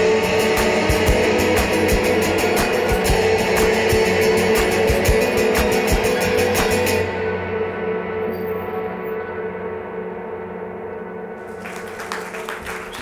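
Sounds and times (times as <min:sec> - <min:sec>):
acoustic guitar strumming: 0:00.0 - 0:08.8.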